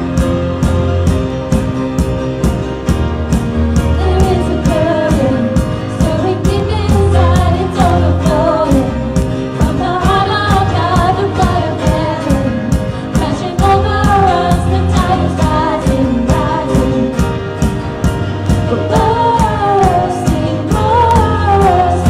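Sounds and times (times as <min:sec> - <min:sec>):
drums: 0:00.0 - 0:22.0
keyboard: 0:00.0 - 0:22.0
piano: 0:00.0 - 0:22.0
woman singing: 0:04.0 - 0:17.3, 0:18.6 - 0:22.0.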